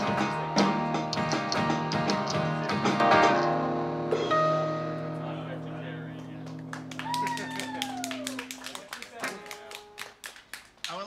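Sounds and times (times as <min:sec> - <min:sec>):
band chord ringing: 0:03.0 - 0:07.0
audience clapping: 0:06.1 - 0:11.0
listener whooping: 0:06.8 - 0:09.0.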